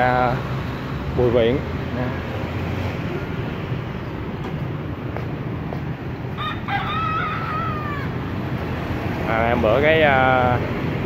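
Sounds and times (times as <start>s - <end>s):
street traffic noise: 0.0s - 11.0s
rooster crowing: 6.3s - 8.4s.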